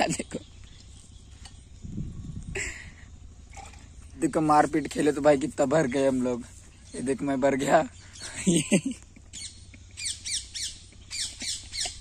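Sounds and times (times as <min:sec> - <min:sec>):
person laughing: 0:02.5 - 0:03.0, 0:08.2 - 0:10.1.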